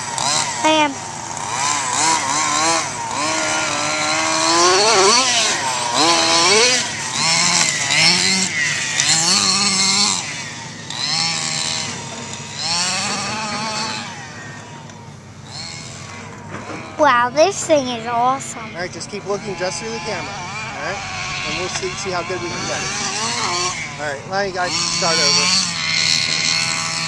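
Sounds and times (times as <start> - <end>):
small two-stroke engine revving: 0.0 - 27.0.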